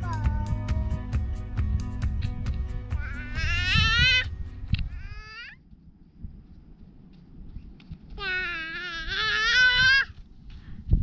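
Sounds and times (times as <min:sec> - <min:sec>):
toddler wailing: 0:02.9 - 0:04.3, 0:04.9 - 0:05.6, 0:08.2 - 0:10.2.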